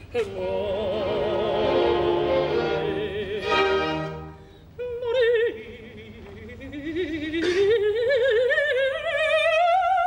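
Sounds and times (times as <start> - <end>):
woman singing operatic phrase: 0.1 - 10.0.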